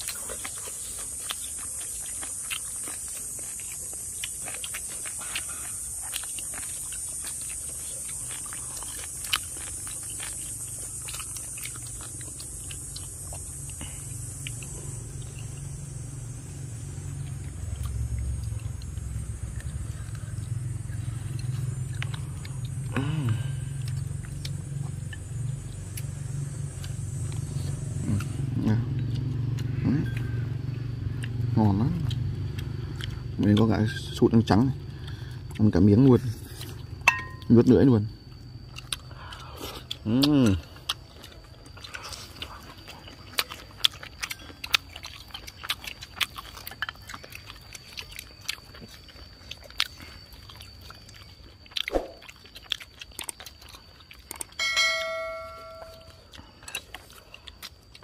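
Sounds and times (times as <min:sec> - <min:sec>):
high-pitched drone: 0:54.6 - 0:56.2.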